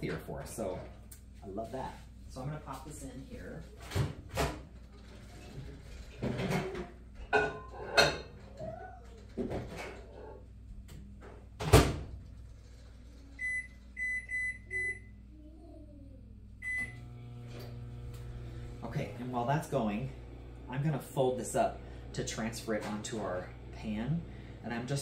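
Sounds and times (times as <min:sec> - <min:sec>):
microwave humming: 0:03.9 - 0:15.7, 0:16.3 - 0:25.0.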